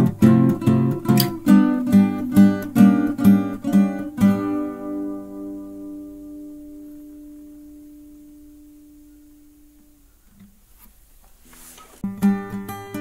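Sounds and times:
strummed guitar chords: 0.0s - 10.1s, 12.0s - 13.0s.

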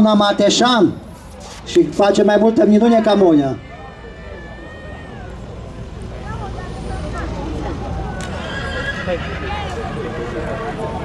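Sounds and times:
crowd chatter: 0.0s - 11.0s
horse whinnying: 8.3s - 9.8s.

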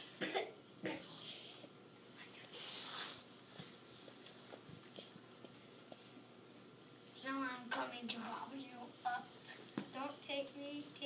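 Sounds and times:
person coughing: 0.1s - 1.2s.

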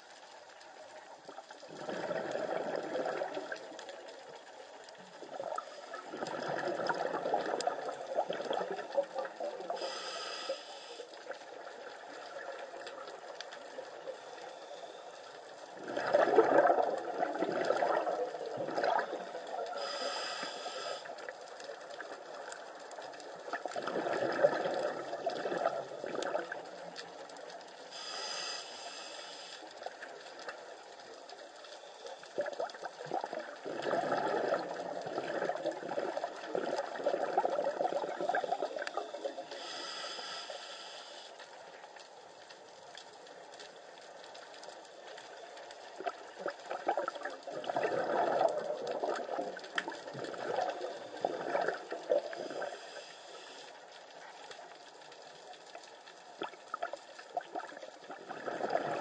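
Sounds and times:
gurgling exhaled bubbles: 1.3s - 4.3s, 4.9s - 9.9s, 15.7s - 20.1s, 21.2s - 27.1s, 32.3s - 39.7s, 45.7s - 53.0s, 56.4s - 59.0s
scuba regulator hissing inhalations: 9.7s - 11.2s, 19.7s - 21.2s, 27.9s - 29.8s, 38.6s - 41.4s, 52.2s - 53.8s.

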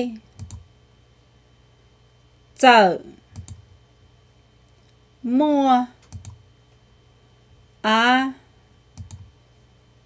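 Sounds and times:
woman speaking: 0.0s - 0.2s, 2.6s - 3.3s, 5.2s - 6.0s, 7.8s - 8.5s
computer clicks: 0.3s - 0.6s, 3.3s - 3.6s, 6.0s - 6.4s, 9.0s - 9.3s.

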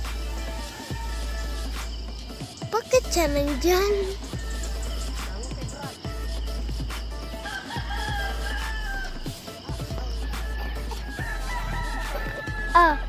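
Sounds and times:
background music with low bass: 0.0s - 13.0s
rooster crowing: 0.1s - 2.1s, 2.8s - 6.0s, 7.2s - 13.0s.

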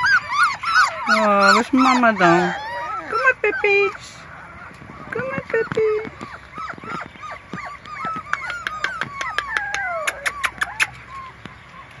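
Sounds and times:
puppies whining and yelping: 0.0s - 12.0s.

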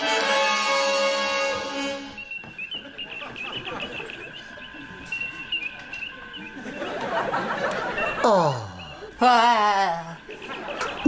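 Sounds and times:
held musical chord: 0.0s - 2.4s
warbling computer bleeps: 2.1s - 9.1s.

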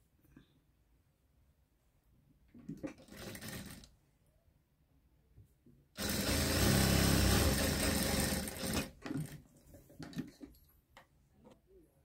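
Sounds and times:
sewing machine stitching fabric: 2.5s - 3.9s, 6.0s - 10.4s.

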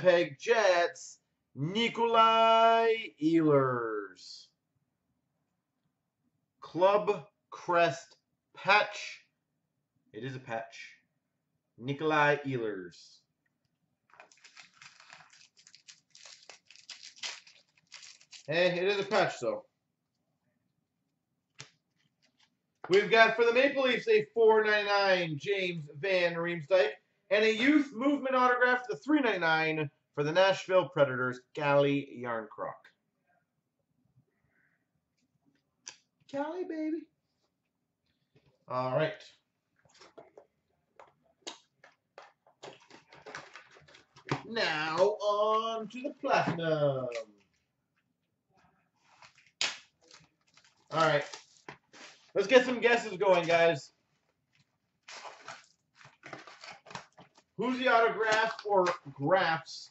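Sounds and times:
man talking: 0.0s - 4.6s, 6.6s - 9.3s, 10.2s - 11.0s, 11.8s - 13.2s, 18.5s - 19.6s, 22.9s - 32.9s, 36.3s - 37.1s, 38.7s - 39.4s, 44.3s - 47.3s, 50.9s - 51.4s, 52.3s - 54.0s, 57.6s - 59.9s
box rustling: 14.1s - 18.5s, 55.1s - 57.4s.

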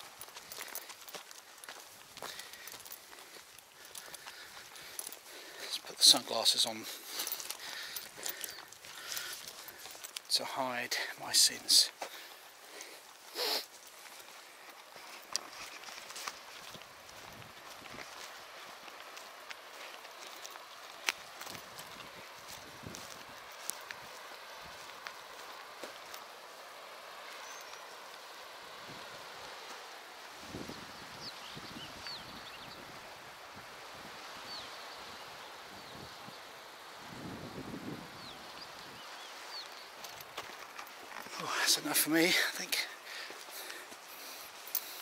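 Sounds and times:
small birds chirping: 0.0s - 33.2s, 34.2s - 37.0s, 37.6s - 45.0s
steady faint hiss: 0.0s - 45.0s
wind rumble on microphone: 30.4s - 34.6s, 35.8s - 39.0s.

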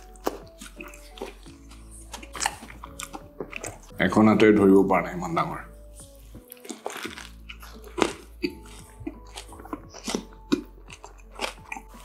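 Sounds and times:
person chewing crispy food: 0.0s - 3.9s, 5.8s - 12.0s
soft background music: 0.0s - 12.0s.

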